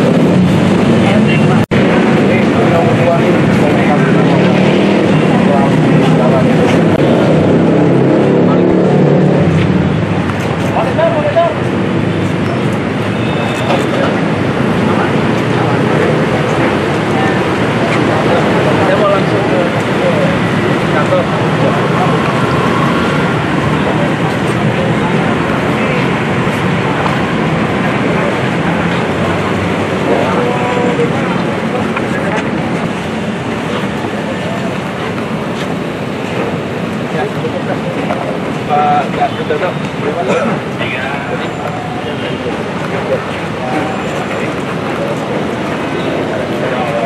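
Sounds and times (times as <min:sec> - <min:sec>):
loud traffic noise: 0:00.0 - 0:47.0
people chattering: 0:00.0 - 0:47.0.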